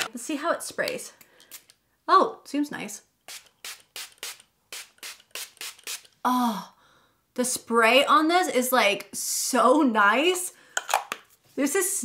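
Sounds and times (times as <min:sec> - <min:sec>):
spray bottle hissing: 0:03.3 - 0:06.2.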